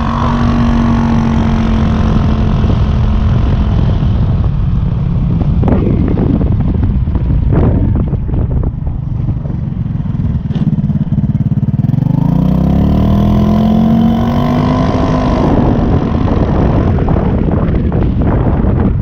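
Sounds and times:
scooter engine accelerating: 0.0 - 7.2, 8.9 - 18.6.

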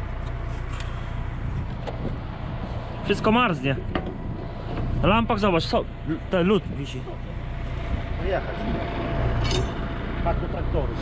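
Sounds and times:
tractor diesel engine rumbling: 0.0 - 11.0.

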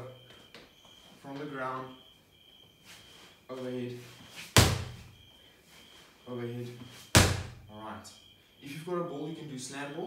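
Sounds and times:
medicine ball thudding on floor: 4.4 - 5.2, 7.0 - 7.7.

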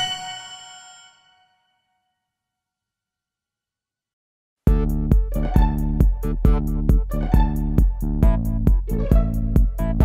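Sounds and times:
bell-like chime note ringing: 0.0 - 2.1.

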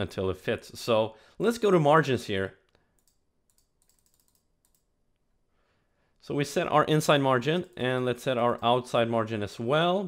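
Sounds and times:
faint keyboard typing: 2.6 - 5.2.

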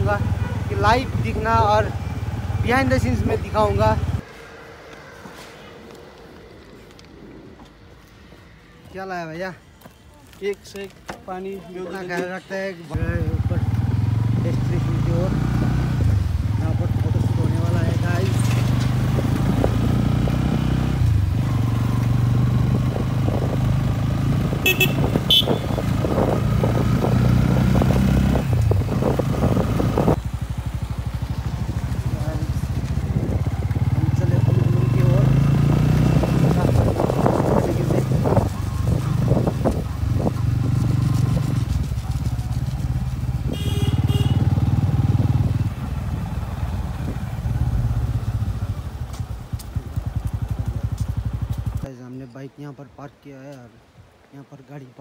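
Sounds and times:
motorcycle engine running: 0.0 - 4.2, 13.0 - 51.9
rushing wind: 15.4 - 51.8
horn beeps: 24.6 - 25.9.

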